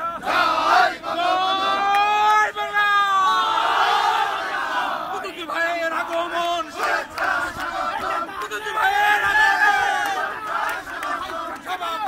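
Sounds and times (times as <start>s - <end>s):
crowd noise: 0.0s - 12.0s
men chanting slogans: 0.0s - 12.0s.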